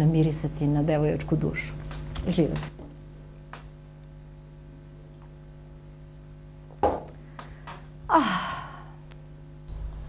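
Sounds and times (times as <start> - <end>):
woman sighing: 8.1 - 9.1.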